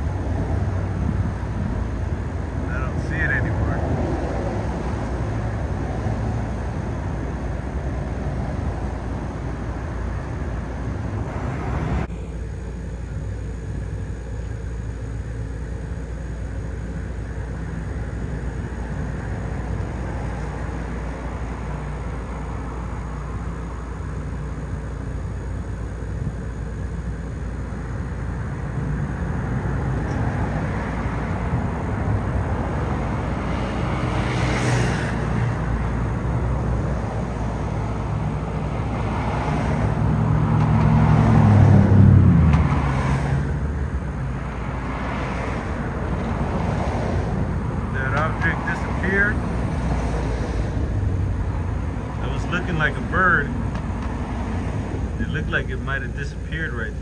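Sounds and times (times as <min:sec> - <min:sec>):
engine passing by: 0:00.0 - 0:12.2, 0:28.7 - 0:57.0
traffic rumble: 0:00.0 - 0:57.0.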